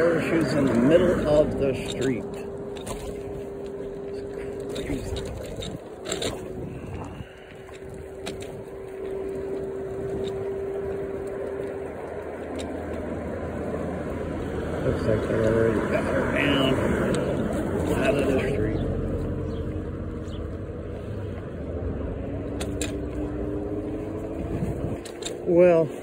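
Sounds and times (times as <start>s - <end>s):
low hum: 0.0s - 15.1s
electric scooter motor whine: 0.0s - 26.0s
wind and wheel noise: 0.0s - 26.0s.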